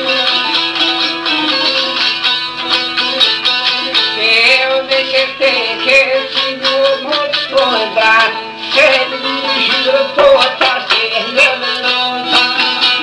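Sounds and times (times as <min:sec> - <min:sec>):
person singing long wavering notes: 0:00.0 - 0:13.0
plucked lute: 0:00.0 - 0:13.0.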